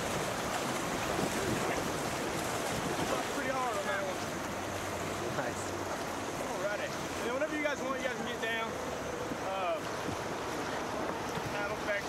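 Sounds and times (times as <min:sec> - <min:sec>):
wind noise on microphone: 0:00.0 - 0:03.5
river current rushing: 0:00.0 - 0:12.0.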